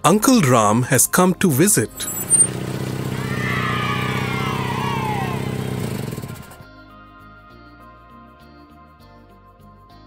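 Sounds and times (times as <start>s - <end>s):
car engine running: 1.9s - 6.6s.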